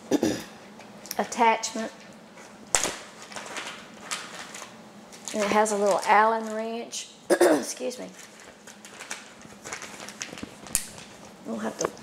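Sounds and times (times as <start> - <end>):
plastic bag crinkling: 2.7 - 7.0, 7.8 - 12.0.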